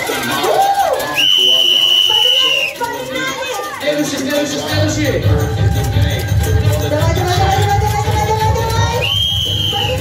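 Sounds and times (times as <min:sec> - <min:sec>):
crowd voices: 0:00.0 - 0:10.0
whistle blown: 0:01.2 - 0:02.8, 0:09.0 - 0:10.0.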